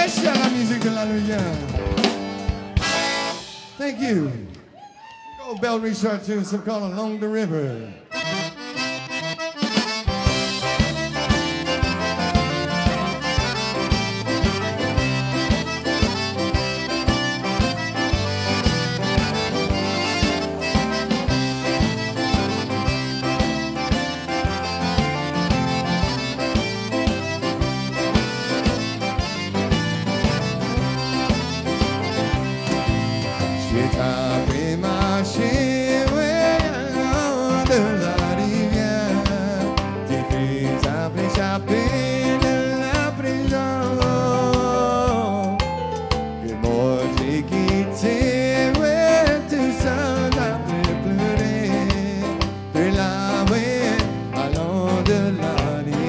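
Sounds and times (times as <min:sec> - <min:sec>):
band with drums bass and guitar: 0:00.0 - 0:06.8, 0:08.0 - 0:56.0
button accordion: 0:01.6 - 0:03.8, 0:07.9 - 0:56.0.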